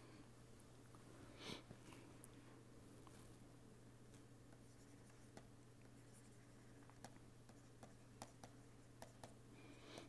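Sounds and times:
low electrical hum: 0.0s - 10.0s
stylus scratching on tablet: 4.6s - 9.4s.

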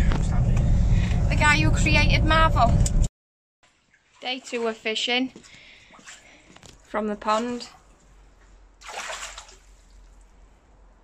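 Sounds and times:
water splash: 3.6s - 4.9s, 8.8s - 10.2s.

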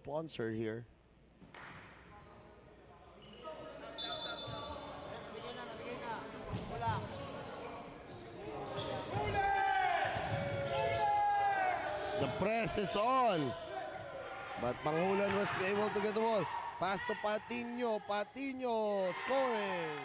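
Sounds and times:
shoe squeaks: 1.2s - 1.5s, 2.1s - 9.1s.

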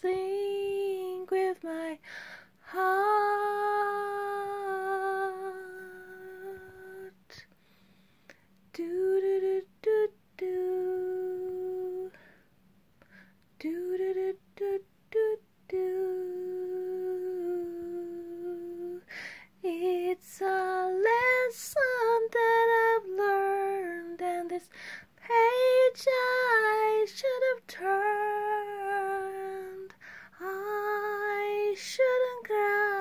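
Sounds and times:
woman singing unaccompanied: 0.0s - 7.5s, 8.7s - 12.4s, 13.6s - 33.0s.

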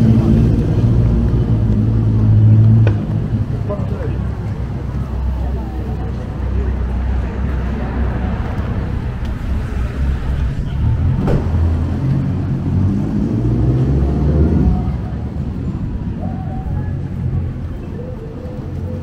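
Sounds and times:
passers-by talking: 0.0s - 19.0s
road traffic rumble: 0.0s - 19.0s.

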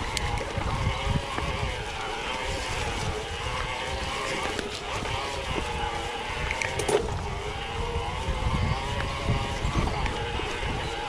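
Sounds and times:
bike tyres rumbling on dirt trail: 0.0s - 11.0s
wavering whine: 0.0s - 11.0s
wind on microphone: 0.0s - 11.0s.

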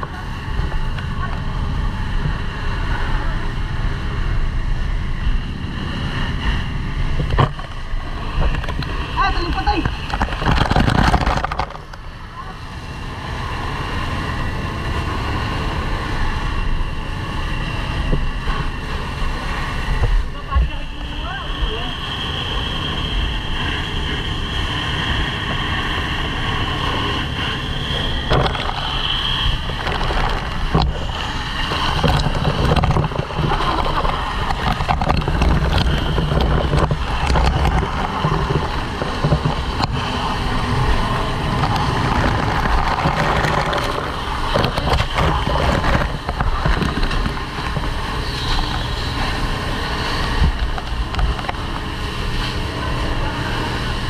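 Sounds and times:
fire hose spraying water: 0.0s - 54.0s
low rumble: 0.0s - 54.0s.

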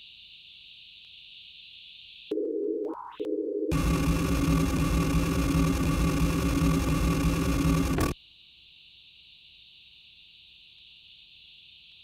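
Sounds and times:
steady electronic tones: 3.7s - 8.2s.

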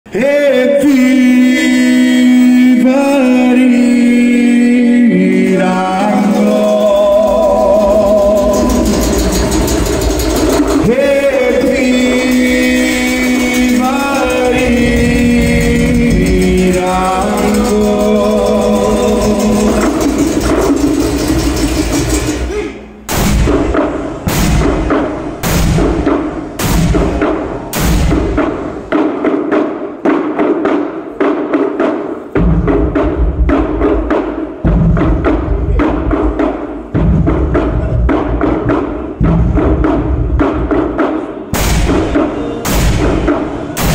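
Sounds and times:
drumming on wooden barrels: 2.2s - 43.9s
loud bright crash: 8.1s - 29.0s, 41.5s - 43.9s.

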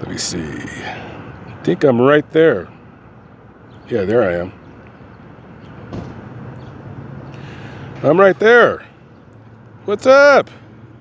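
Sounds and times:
vehicle noise: 0.0s - 11.0s.

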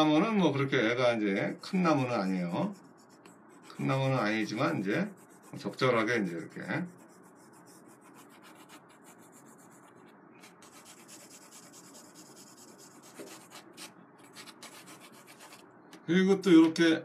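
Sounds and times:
pencil scratching on paper: 1.6s - 15.6s.

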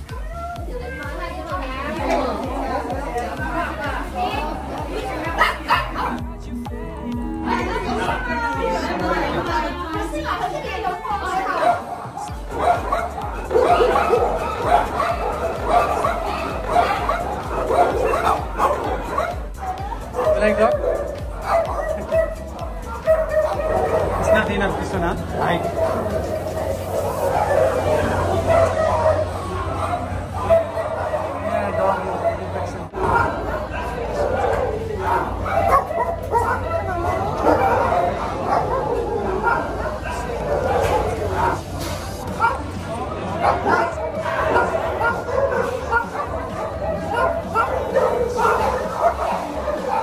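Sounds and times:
dogs barking: 0.0s - 50.0s
people's voices: 0.0s - 50.0s.

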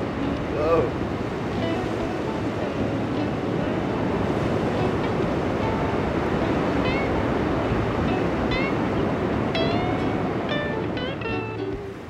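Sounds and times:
ocean surf breaking: 0.0s - 12.0s.

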